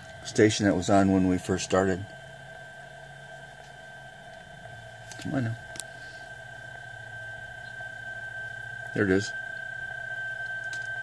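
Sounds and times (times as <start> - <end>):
faint radio band noise: 0.0 - 11.0
low hum: 0.0 - 11.0
steady digital signal tone: 0.0 - 11.0.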